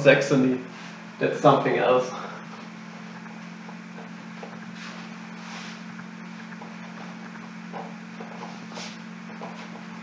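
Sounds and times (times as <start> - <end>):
low electrical hum: 0.0 - 10.0
cloth wiping whiteboard: 4.6 - 6.0, 8.2 - 9.9.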